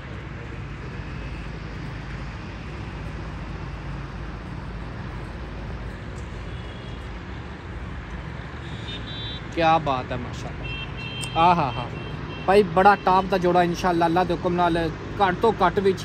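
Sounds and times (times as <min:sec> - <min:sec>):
road traffic hum: 0:00.0 - 0:16.0.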